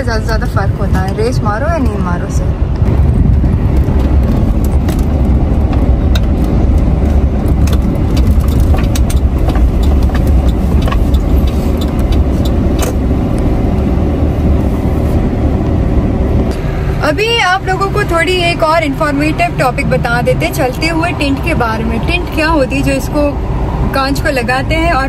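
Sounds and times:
car road and engine rumble: 0.0 - 25.0.

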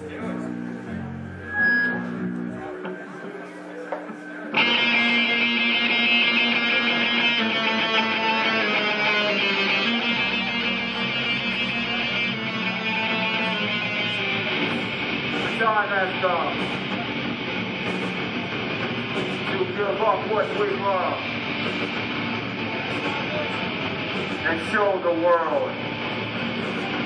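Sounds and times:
loud electric guitars: 0.0 - 27.0
low held notes: 0.0 - 27.0.

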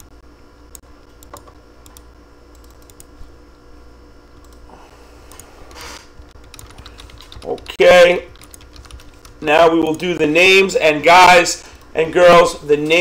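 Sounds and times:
low steady hum: 0.0 - 13.0
keyboard and mouse clicks: 0.7 - 3.1, 4.4 - 4.6, 5.3 - 10.1.

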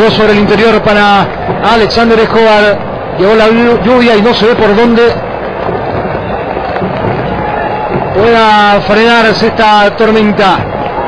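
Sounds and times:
distant crowd: 0.0 - 11.0
heavy rain hiss and patter: 0.0 - 11.0.

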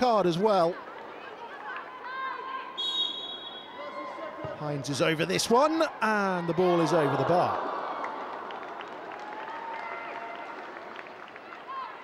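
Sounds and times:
referee's whistle blast: 2.8 - 3.8.

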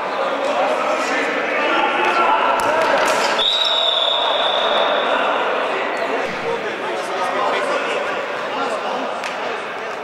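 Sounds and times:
players' voices and shouts echoing: 0.0 - 10.0.

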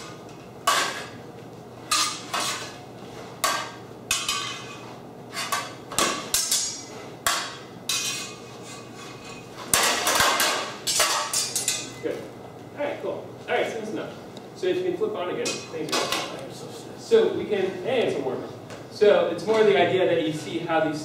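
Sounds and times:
swords clashing metallic clanks: 1.9 - 2.8, 3.4 - 4.8, 5.4 - 8.4.

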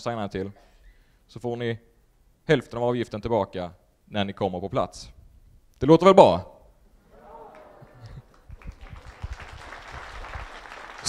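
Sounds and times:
audience clapping: 7.2 - 11.0.

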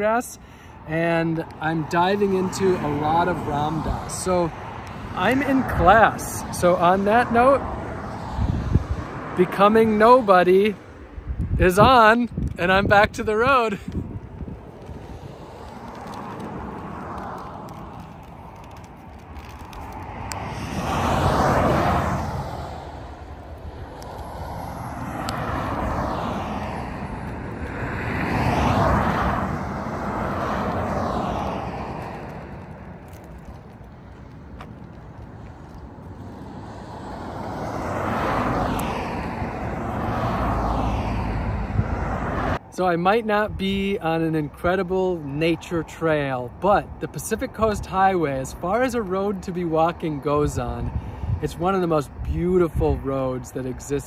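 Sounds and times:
cars passing on highway: 0.0 - 54.0.

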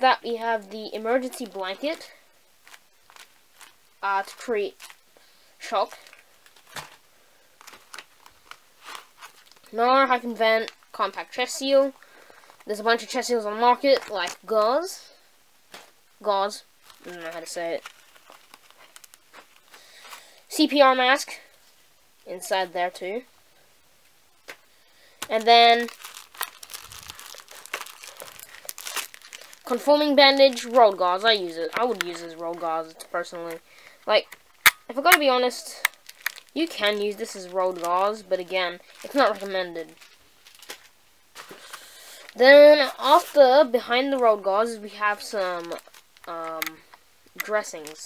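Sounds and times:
foil blanket rustling in wrapper: 0.0 - 15.0, 15.7 - 20.4, 25.1 - 48.0
sharp crackles: 1.2 - 13.1, 16.8 - 20.4, 24.4 - 48.0.

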